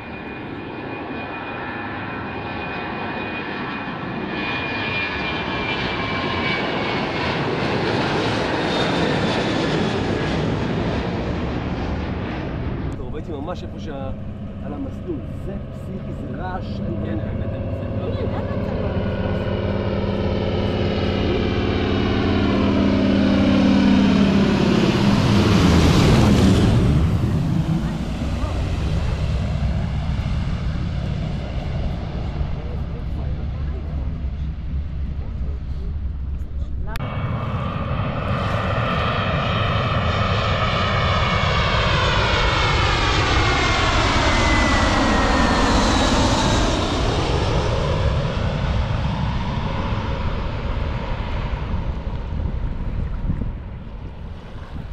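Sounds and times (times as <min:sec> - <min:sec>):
airliner flying low: 0:00.0 - 0:54.9
high jet engine whine: 0:00.0 - 0:54.9.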